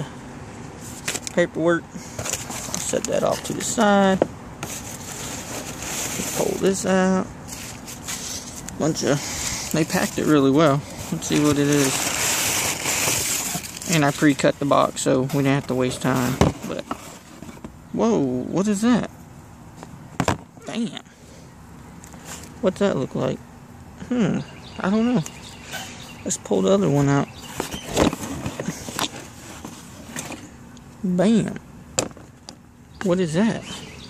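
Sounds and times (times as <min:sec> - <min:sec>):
packing material and cardboard rustling: 0:02.1 - 0:03.9, 0:04.6 - 0:17.6, 0:27.3 - 0:30.5.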